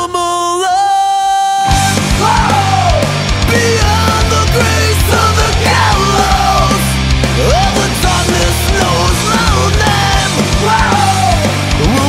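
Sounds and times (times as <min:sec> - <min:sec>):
rock band playing: 0:01.6 - 0:12.0.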